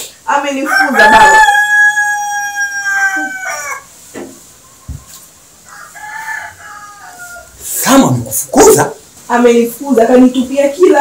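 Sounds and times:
rooster crowing: 0.6s - 3.9s, 4.9s - 7.7s.

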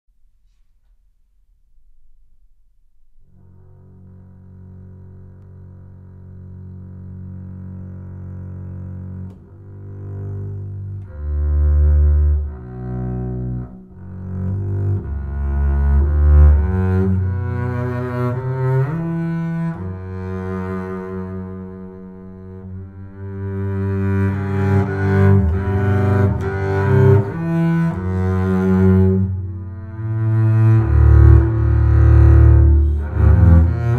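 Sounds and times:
bowed double bass notes: 3.1s - 33.9s.

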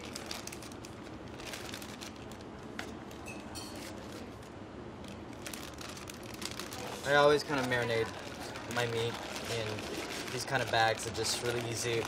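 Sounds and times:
plastic bag crinkling and rustling: 0.0s - 12.0s
steady background hum: 0.0s - 12.0s.

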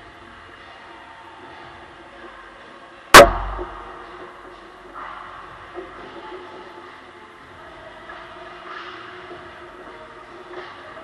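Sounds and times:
loud crack of hit on goal: 3.2s - 4.1s
low rumble of shaking frame: 3.2s - 4.9s.

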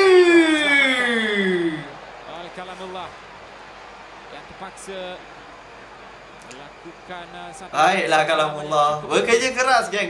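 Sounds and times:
football crowd noise: 0.0s - 10.0s.

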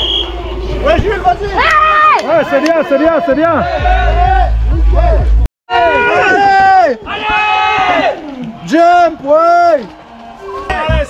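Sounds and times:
spectators shouting encouragement: 1.3s - 11.0s.

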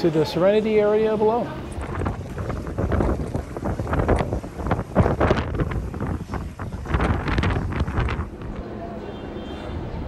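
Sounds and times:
wind buffeting microphone: 1.6s - 8.8s.

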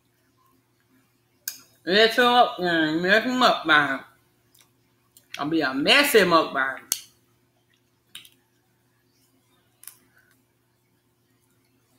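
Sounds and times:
faint low hum: 0.0s - 11.9s
woman's voice: 1.9s - 4.1s, 5.3s - 6.9s.

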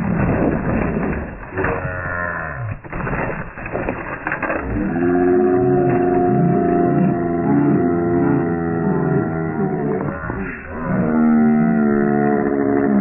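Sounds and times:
cow mooing: 1.7s - 2.7s, 4.8s - 13.0s.

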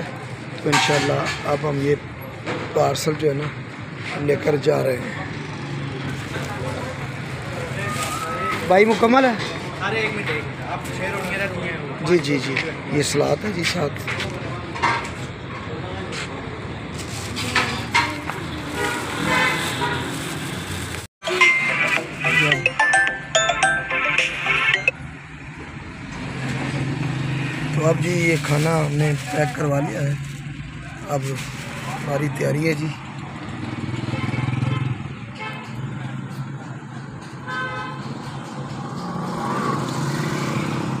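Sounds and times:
street traffic noise: 0.0s - 41.0s
vehicle horn: 18.7s - 20.2s.

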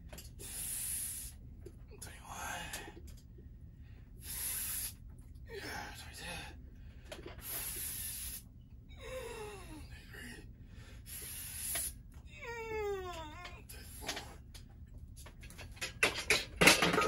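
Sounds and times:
man's hissing exhales: 0.4s - 1.4s, 4.2s - 5.0s, 7.4s - 8.5s, 11.0s - 12.0s.

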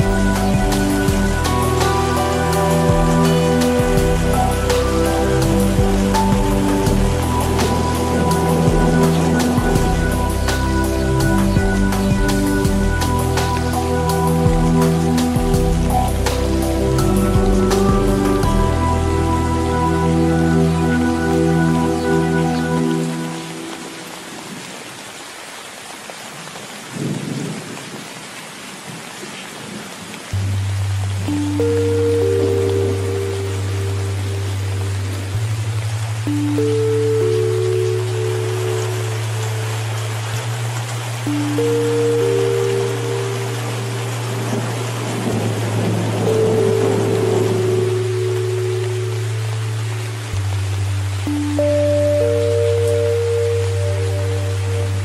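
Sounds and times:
thunder rumbling: 0.0s - 13.5s, 26.9s - 28.2s, 43.9s - 48.4s
soft music with held notes: 0.0s - 24.7s, 30.3s - 55.0s
heavy rain: 0.0s - 55.0s.

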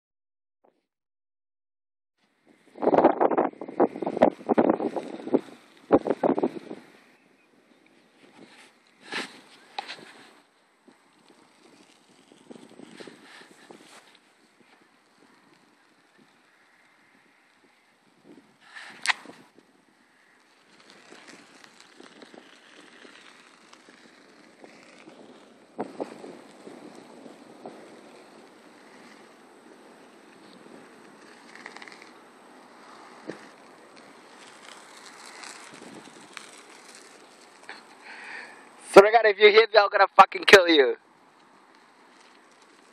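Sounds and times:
wind buffeting microphone: 2.5s - 7.0s, 8.2s - 37.4s.

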